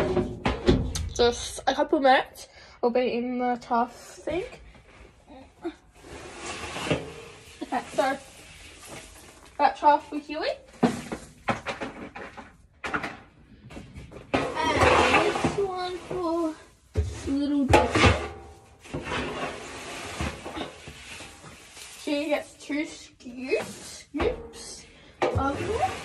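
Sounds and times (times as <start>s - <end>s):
knocks of containers and lids: 0.0s - 1.1s, 16.9s - 18.6s.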